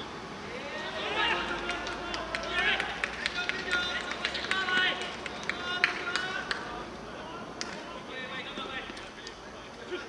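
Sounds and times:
players shouting: 0:00.4 - 0:10.0.

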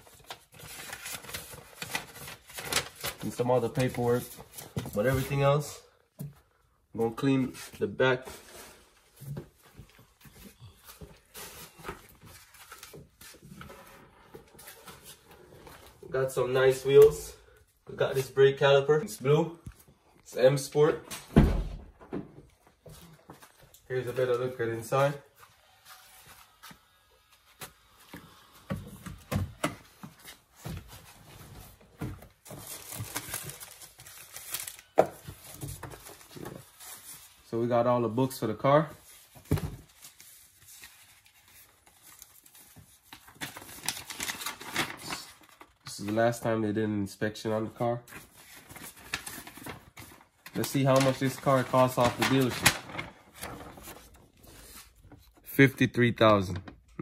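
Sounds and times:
papers and plastic rustling: 0:00.0 - 0:21.3, 0:27.4 - 0:46.6, 0:47.4 - 0:57.0
crinkling: 0:48.1 - 0:55.5.

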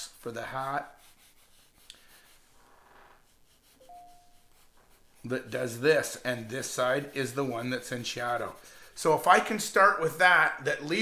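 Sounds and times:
pencil scratching on paper: 0:00.0 - 0:10.6
faint steady tone: 0:03.7 - 0:05.0.

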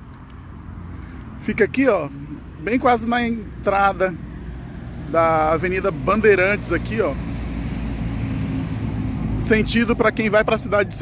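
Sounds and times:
bus driving past: 0:00.0 - 0:11.0.

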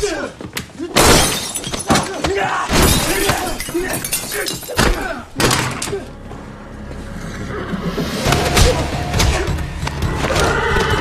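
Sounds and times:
glass shattering: 0:01.0 - 0:02.1, 0:02.7 - 0:05.2
men grunting and crying out: 0:01.9 - 0:06.4.

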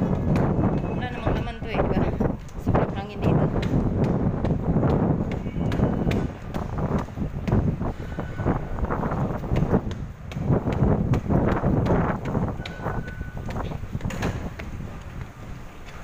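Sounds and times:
footsteps on stone stairs: 0:00.0 - 0:16.0
microphone handling rumble: 0:00.0 - 0:16.0
short faint beep: 0:12.6 - 0:13.5.

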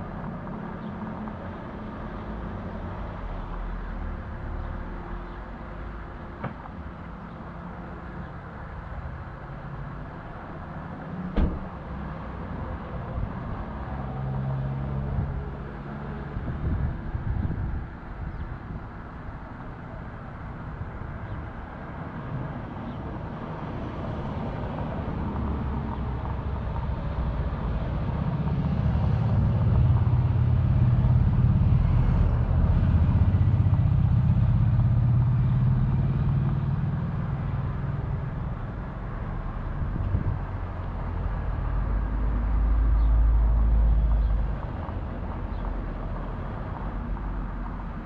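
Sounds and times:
vehicle engine passing: 0:25.2 - 0:45.6.

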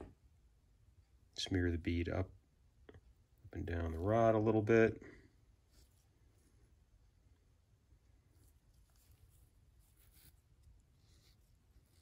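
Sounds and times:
faint soft rustles: 0:02.8 - 0:12.0.

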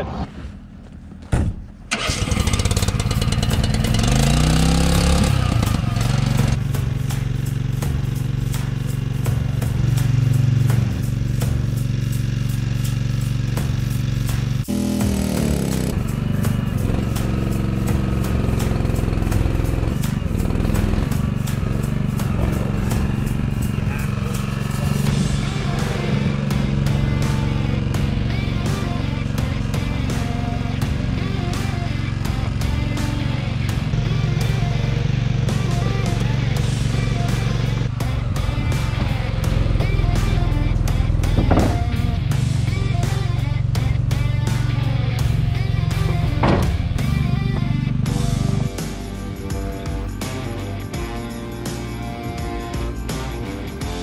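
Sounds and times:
truck engine running and revving: 0:01.9 - 0:54.0.

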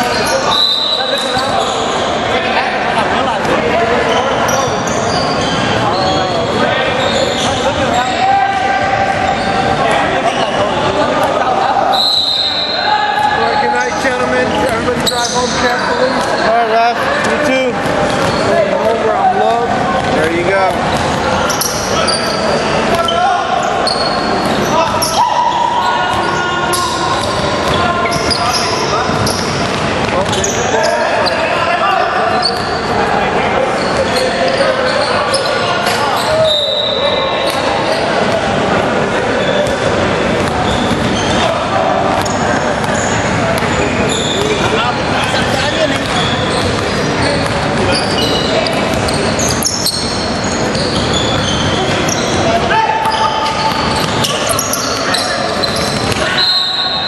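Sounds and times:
players calling out: 0:00.0 - 0:57.0
sneakers squeaking: 0:00.0 - 0:57.0.

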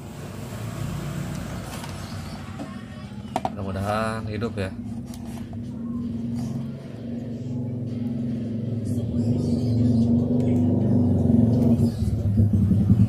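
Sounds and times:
low engine-like hum: 0:00.0 - 0:13.0.

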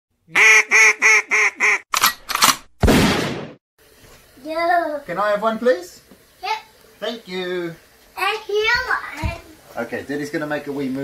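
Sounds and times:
duck-like quacks: 0:00.4 - 0:01.8.

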